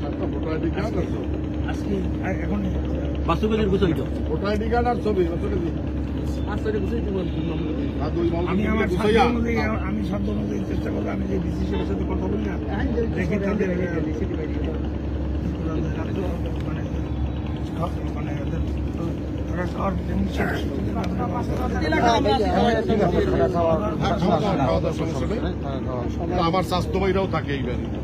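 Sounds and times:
men talking: 0.0s - 28.0s
steady low hum: 0.0s - 28.0s.

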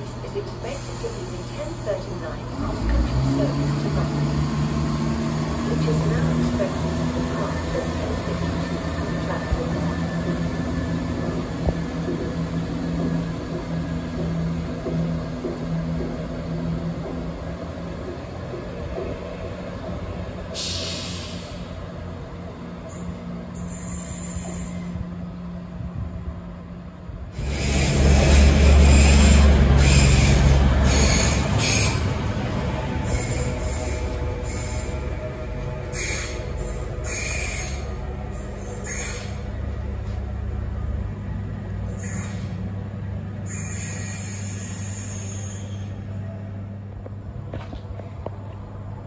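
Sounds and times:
diesel train engines humming: 0.0s - 49.0s
train passing at speed: 0.0s - 49.0s.

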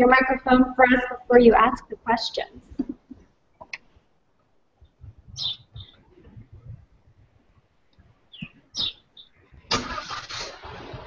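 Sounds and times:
high chirping blips: 4.9s - 6.8s, 8.3s - 9.4s.

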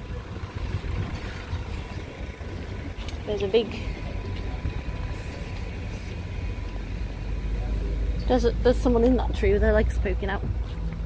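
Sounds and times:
wind buffeting microphone: 0.0s - 5.1s
faint outdoor background noise: 0.0s - 11.0s.

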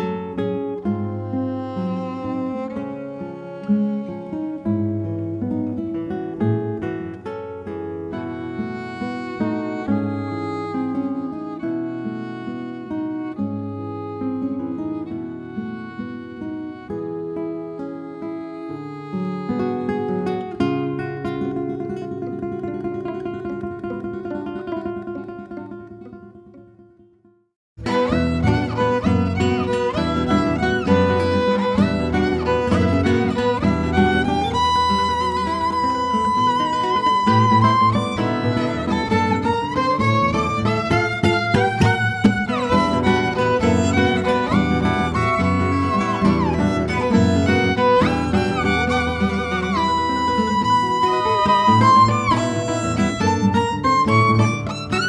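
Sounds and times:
violin melody: 0.0s - 22.1s, 27.8s - 55.0s
acoustic guitar: 0.0s - 55.0s.

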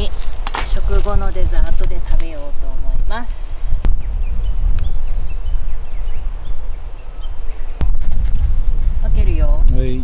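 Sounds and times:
wind buffeting microphone: 0.0s - 10.0s
faint bird chirps: 3.9s - 8.0s.

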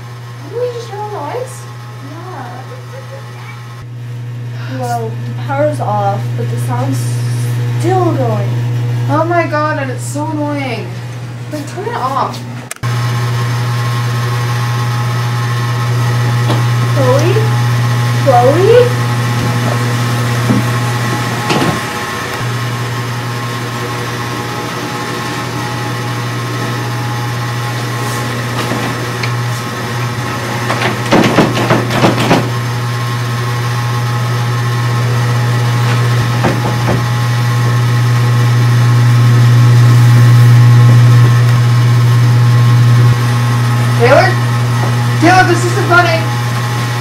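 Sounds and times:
loud steady low hum: 0.0s - 47.0s.

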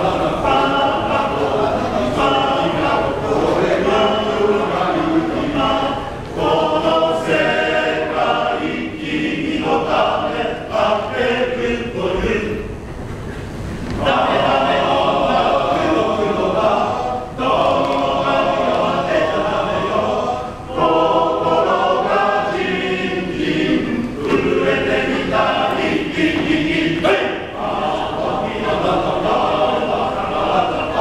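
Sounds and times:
male choir singing in harmony: 0.0s - 12.7s, 14.0s - 31.0s.

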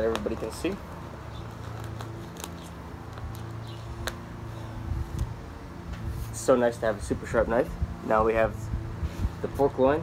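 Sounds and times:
plastic bag crinkling: 1.4s - 4.2s.

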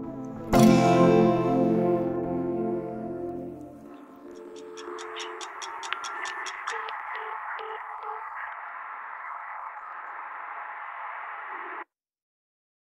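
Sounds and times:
static-like hiss: 3.7s - 11.9s
quick even ticks: 4.2s - 8.6s
short low beeps: 4.4s - 8.4s.

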